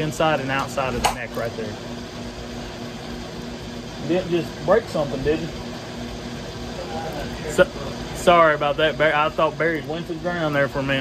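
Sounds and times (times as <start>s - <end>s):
machine or fan humming: 0.0s - 11.0s.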